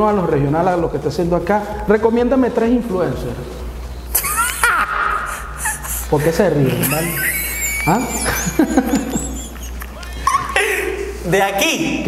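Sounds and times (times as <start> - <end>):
men laughing squealing: 4.1 - 11.2.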